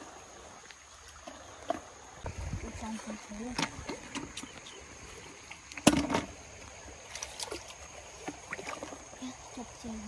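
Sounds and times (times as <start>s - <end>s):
stream water sloshing and splashing: 0.0s - 10.0s.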